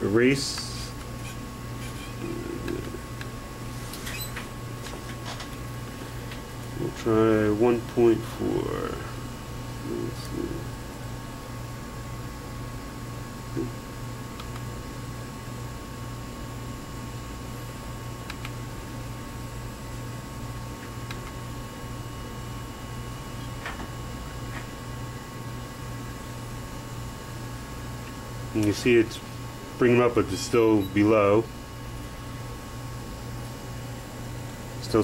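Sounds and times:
electrical hum: 0.0s - 35.0s.

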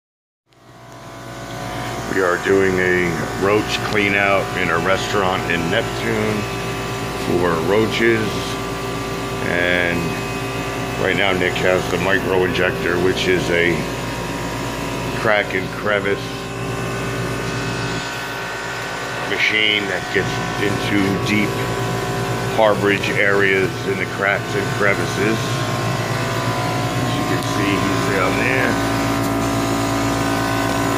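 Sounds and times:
mechanical drone with low hum: 0.5s - 30.9s.

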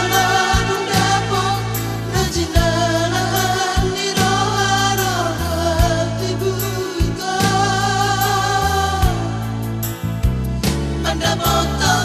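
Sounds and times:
band accompaniment with bass: 0.0s - 12.0s.

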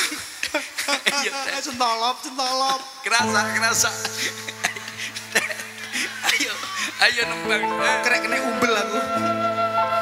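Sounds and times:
stage band music: 3.2s - 10.0s.

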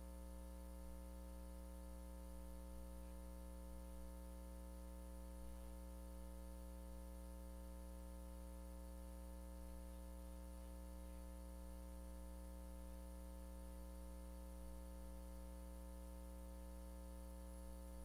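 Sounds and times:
faint electrical hum with hiss: 0.0s - 18.0s.

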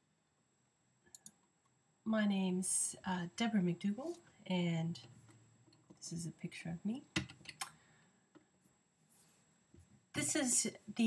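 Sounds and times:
computer mouse clicks: 1.1s - 1.4s.

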